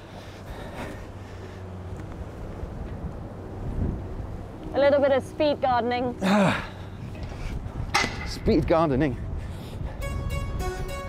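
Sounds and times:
wind on microphone: 2.9s - 4.4s, 7.0s - 11.0s.

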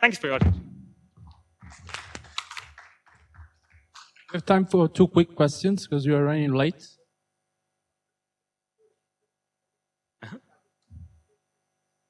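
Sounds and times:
audience clapping: 1.6s - 4.5s.

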